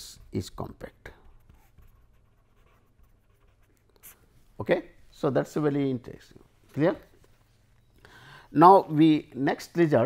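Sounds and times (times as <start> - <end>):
pen scratching on paper: 1.2 - 4.2.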